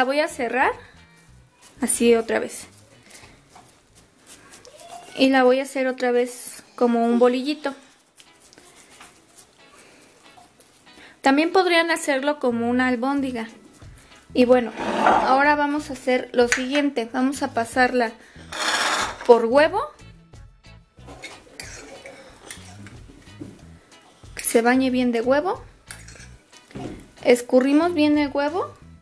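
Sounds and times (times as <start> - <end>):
hands patting and squishing food: 1.2 - 5.8, 8.0 - 11.0
metal spoon scraping glass bowl: 14.5 - 15.5, 18.4 - 19.4, 25.9 - 26.3.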